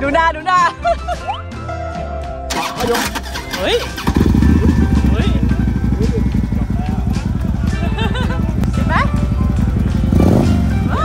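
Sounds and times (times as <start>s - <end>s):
motorcycle engine rumbling: 2.5s - 11.0s.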